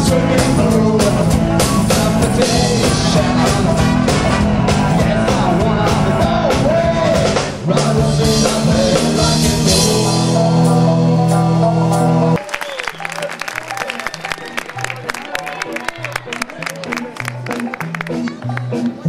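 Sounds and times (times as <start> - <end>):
bass line: 0.0 - 12.4
singing: 0.0 - 13.0
rock and roll brass band: 0.0 - 19.0
crowd hand-clapping: 12.4 - 19.0.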